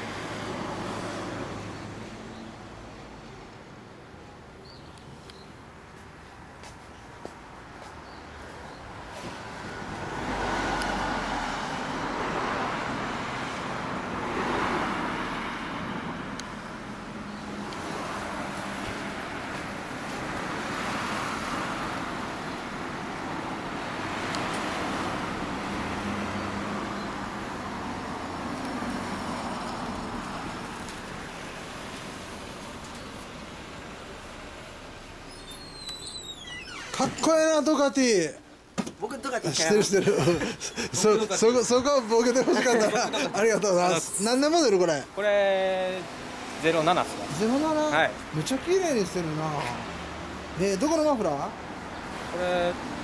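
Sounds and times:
street traffic noise: 0:00.0 - 0:53.0.

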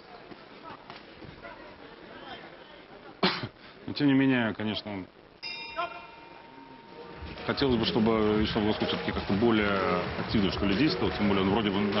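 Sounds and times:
boxing ring bell ringing: 0:05.4 - 0:07.1.

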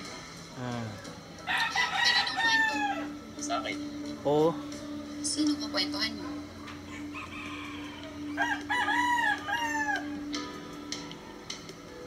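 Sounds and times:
rooster crowing: 0:01.4 - 0:03.3, 0:06.7 - 0:10.5.

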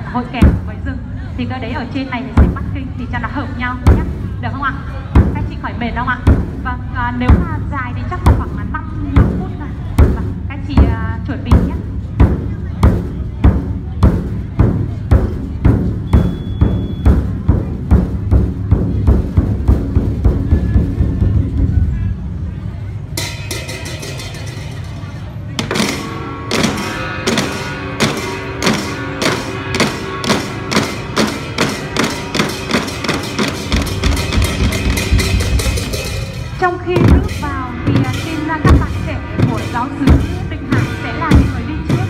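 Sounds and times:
large drums beaten in rhythm: 0:00.3 - 0:00.9, 0:02.3 - 0:02.8, 0:03.5 - 0:22.0, 0:25.6 - 0:42.0
brass band playing: 0:25.8 - 0:36.6.

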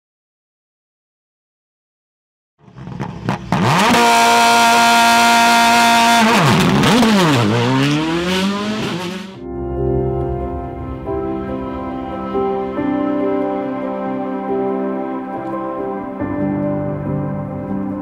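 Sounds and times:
racing car engine revving: 0:02.6 - 0:09.4
music: 0:09.4 - 0:18.0.

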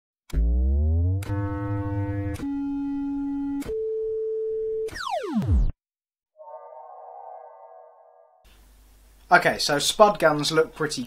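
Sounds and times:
buzzy synth chord: 0:00.7 - 0:03.5
falling synth sweep: 0:06.4 - 0:08.5
sustained synth tones: 0:06.4 - 0:08.5.

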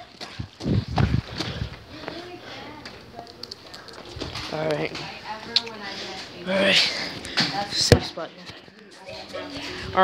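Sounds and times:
distant voices: 0:01.2 - 0:10.0.

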